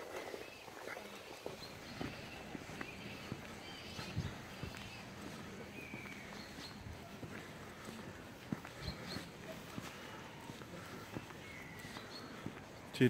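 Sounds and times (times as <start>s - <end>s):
footsteps on asphalt: 1.4s - 12.9s.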